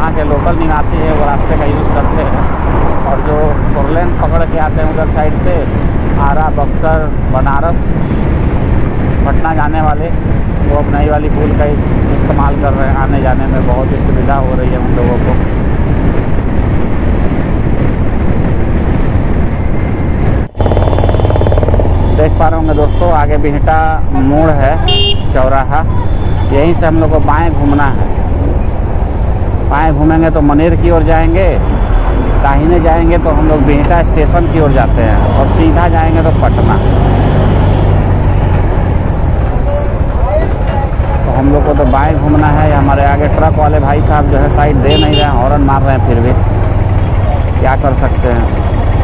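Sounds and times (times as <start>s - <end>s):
vehicle rumble on highway: 0.0s - 49.0s
wind and road noise: 0.0s - 49.0s.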